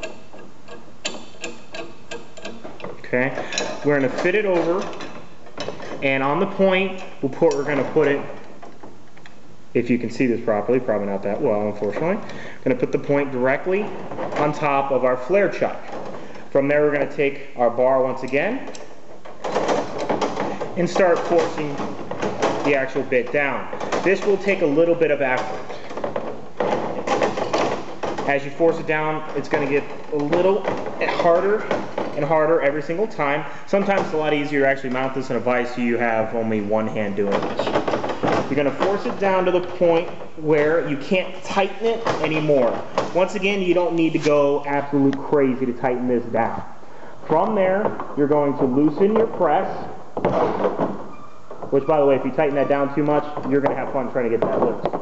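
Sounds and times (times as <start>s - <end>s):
metal scraping and creaking: 0.0s - 55.0s.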